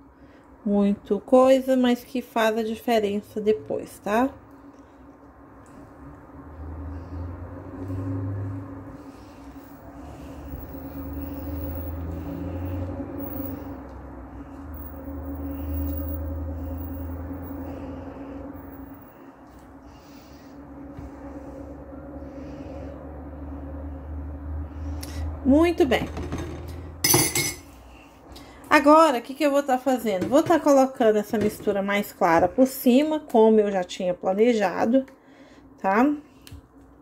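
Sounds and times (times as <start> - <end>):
low mechanical hum: 0.0 - 37.0.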